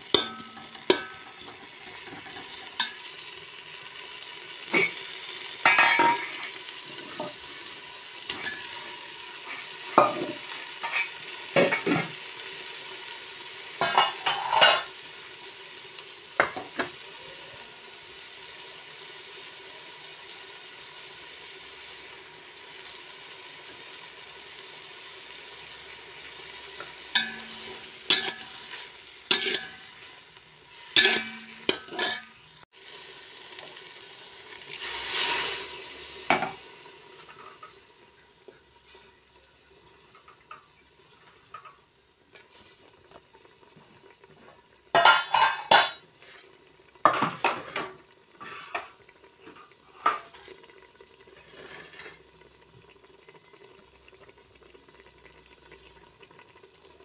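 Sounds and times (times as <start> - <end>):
greens sizzling in oil: 0.0 - 57.0
water hissing in hot pot: 0.0 - 57.0
metal skimmer scraping pot: 26.8 - 30.1, 30.9 - 32.4, 51.4 - 52.2.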